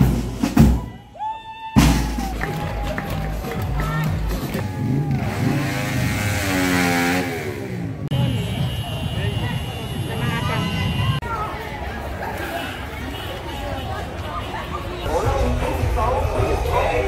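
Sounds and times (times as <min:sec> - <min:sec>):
crowd voices: 0:00.0 - 0:17.0
vehicle engine revving: 0:04.6 - 0:08.2.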